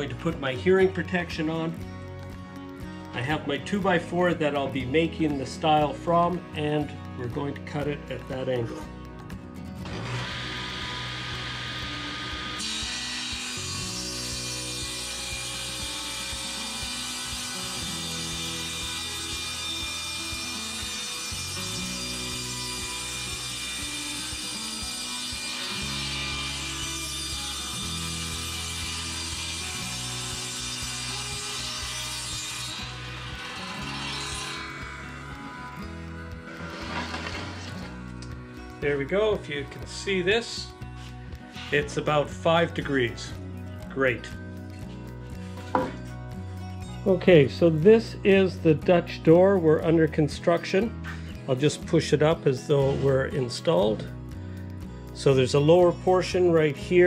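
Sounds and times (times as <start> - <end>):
table saw ripping wood: 9.7 - 43.4, 44.1 - 46.9, 52.1 - 54.1.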